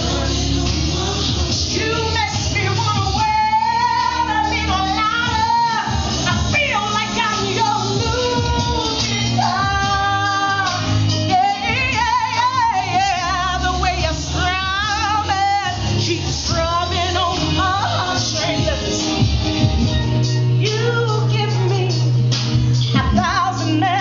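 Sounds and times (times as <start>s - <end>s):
musical accompaniment with bass line: 0.0s - 24.0s
woman singing with vibrato: 0.0s - 24.0s.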